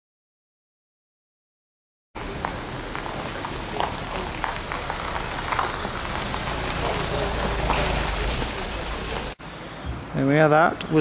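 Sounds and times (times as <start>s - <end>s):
steady hiss: 2.2s - 11.0s.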